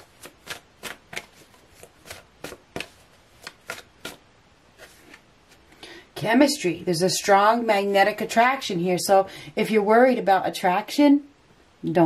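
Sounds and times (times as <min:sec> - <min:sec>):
cards being shuffled: 0:00.0 - 0:05.7.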